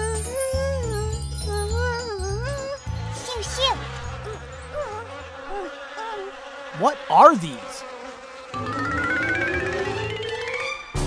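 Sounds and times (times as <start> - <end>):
flies buzzing: 2.0 - 9.8.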